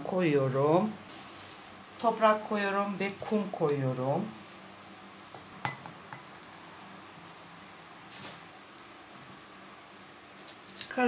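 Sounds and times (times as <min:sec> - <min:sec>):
potting mix scraping: 0:00.0 - 0:06.6
faint steady hum: 0:00.0 - 0:11.0.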